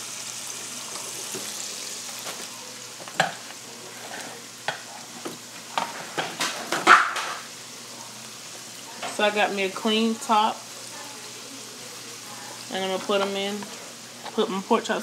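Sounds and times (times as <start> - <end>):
pork chops sizzling in oil: 0.0 - 15.0.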